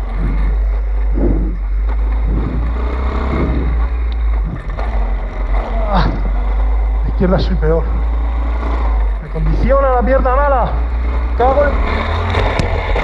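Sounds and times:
wind rumble on microphone: 0.0 - 3.8
small motorbike engine running: 0.0 - 13.0.

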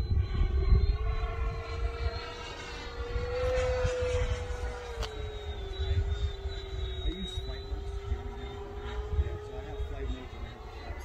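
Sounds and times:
rc jet fan whine: 0.0 - 11.0.

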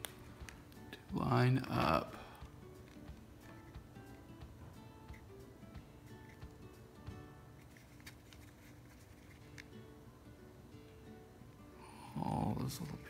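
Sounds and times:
plucked guitar music: 0.0 - 7.7.

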